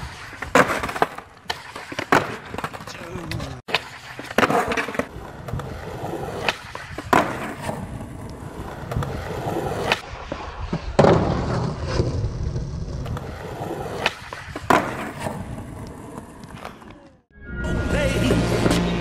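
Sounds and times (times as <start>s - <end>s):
skateboard clacking on ground: 0.0s - 9.2s
skateboard wheels rolling on asphalt: 0.0s - 17.3s.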